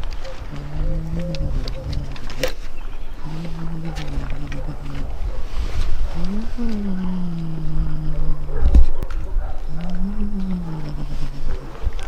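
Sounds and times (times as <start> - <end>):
crunching clicks of chewing: 0.0 - 12.0
cat growling: 0.4 - 2.6, 3.2 - 12.0.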